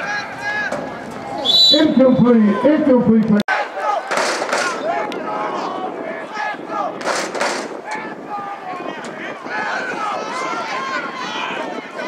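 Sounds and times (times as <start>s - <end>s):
players and spectators shouting: 0.0s - 12.0s
rushes of crowd noise: 0.0s - 12.0s.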